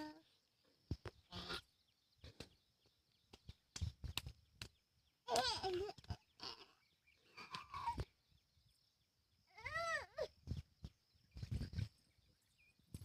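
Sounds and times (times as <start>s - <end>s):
small child's high vocal sound: 9.5s - 10.3s.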